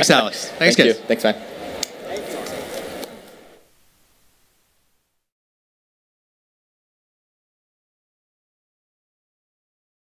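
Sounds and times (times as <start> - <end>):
hall room noise: 0.0 - 5.3.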